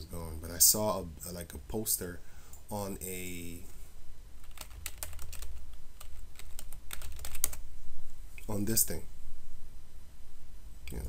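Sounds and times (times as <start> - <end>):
low steady hum: 0.0 - 11.0
typing on computer keyboard: 4.4 - 7.6.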